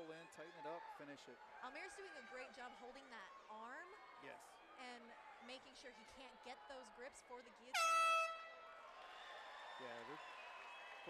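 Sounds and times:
air horn steady high tone: 7.7s - 8.7s.

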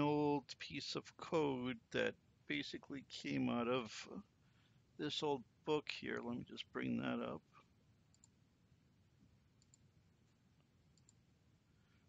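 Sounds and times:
computer mouse clicks: 8.1s - 8.4s, 9.6s - 9.9s, 10.9s - 11.2s.

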